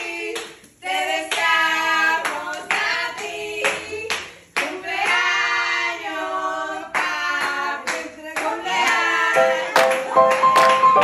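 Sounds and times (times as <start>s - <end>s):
people singing together: 0.0s - 11.0s
hand clapping: 2.2s - 5.2s, 6.9s - 11.0s.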